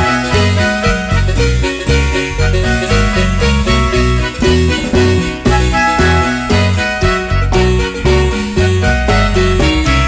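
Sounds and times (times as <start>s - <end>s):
marimba melody: 1.8s - 8.8s
repeating bass note: 2.2s - 7.4s.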